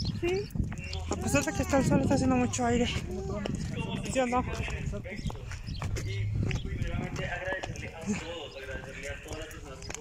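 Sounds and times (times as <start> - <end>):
voices talking: 0.0 - 10.0
wind buffeting microphone: 0.0 - 10.0.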